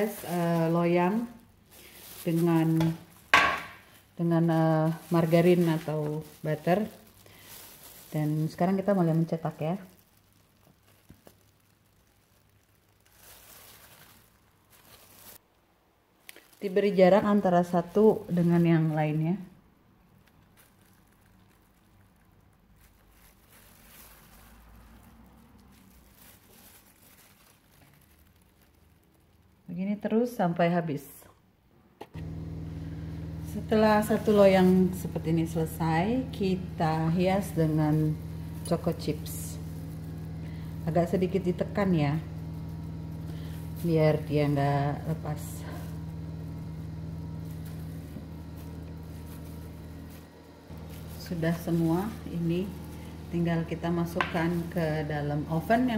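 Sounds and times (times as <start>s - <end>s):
soft rustles: 0.0s - 15.5s, 20.2s - 29.6s, 32.1s - 55.9s
oven motor humming: 32.2s - 55.9s.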